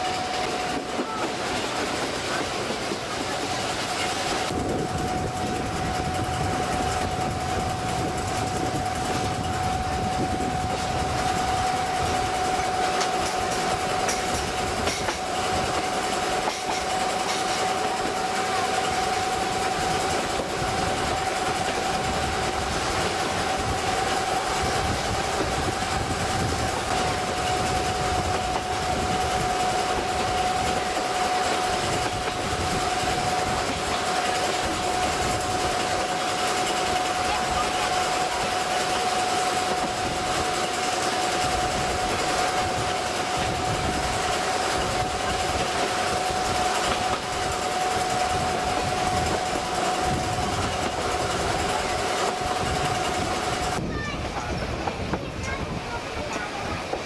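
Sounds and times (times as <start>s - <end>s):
steady whine: 0.0s - 57.0s
train running on track: 0.0s - 57.0s.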